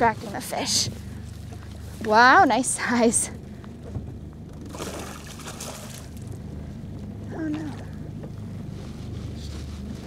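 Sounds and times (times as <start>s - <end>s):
idling boat motor hum: 0.0s - 10.0s
water splashing: 4.6s - 6.4s.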